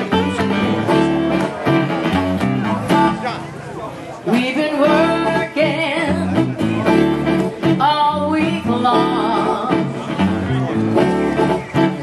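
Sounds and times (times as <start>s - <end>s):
acoustic band playing country music: 0.0s - 12.0s
plucked guitar: 0.0s - 12.0s.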